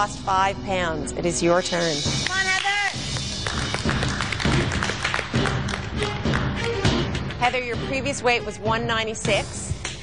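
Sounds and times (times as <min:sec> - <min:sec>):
music with tapping percussive beat: 0:01.9 - 0:10.0.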